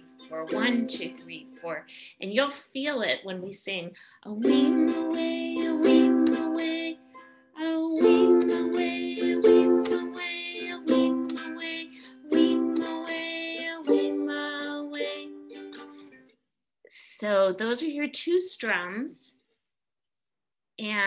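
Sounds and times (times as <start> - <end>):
ukulele strumming: 0.0 - 1.7, 4.4 - 16.1.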